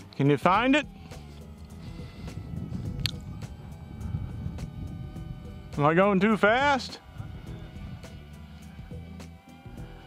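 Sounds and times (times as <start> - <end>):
soft background music: 0.0 - 10.0
wind rumble on microphone: 0.5 - 10.0.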